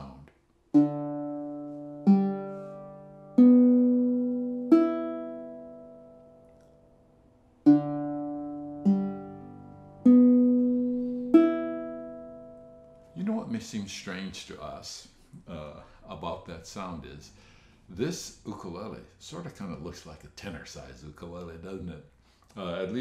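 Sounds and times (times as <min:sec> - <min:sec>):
ukulele chords ringing: 0:00.7 - 0:13.2.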